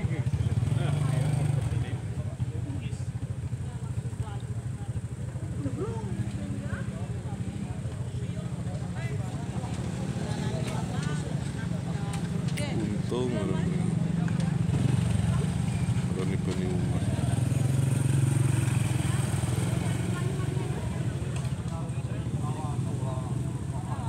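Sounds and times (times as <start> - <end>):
people talking: 0.0 - 24.0.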